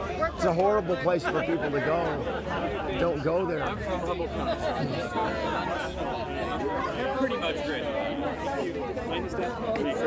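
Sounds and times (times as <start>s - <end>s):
overlapping conversation: 0.0s - 10.0s.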